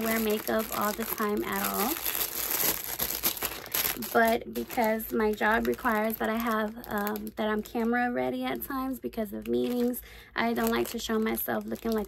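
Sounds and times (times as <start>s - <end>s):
packaging crinkling: 0.0s - 8.1s, 9.2s - 12.0s.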